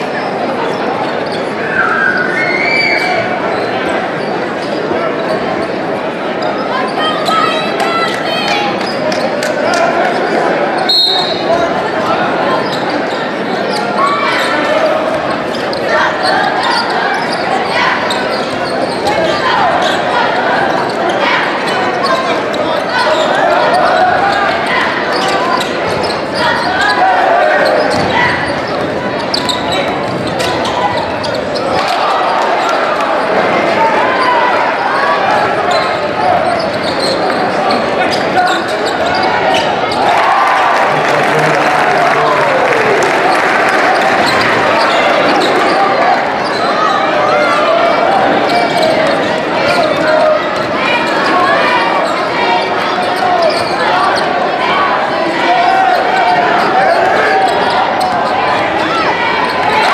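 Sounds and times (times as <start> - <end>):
crowd chatter: 0.0 - 59.9.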